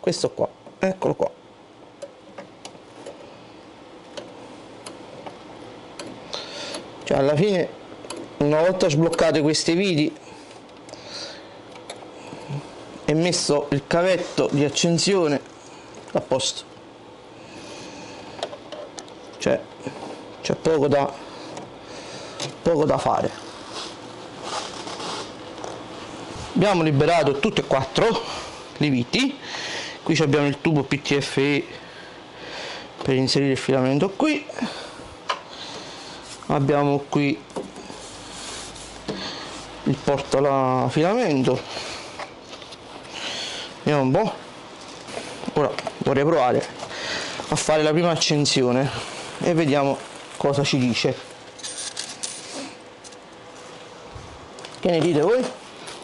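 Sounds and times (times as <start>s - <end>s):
faint steady hum: 0.0s - 56.0s.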